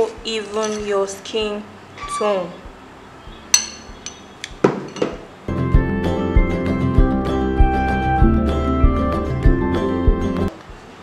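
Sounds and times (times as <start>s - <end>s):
metal spoon clinking glass bowl: 0.6s - 0.9s, 3.5s - 4.3s.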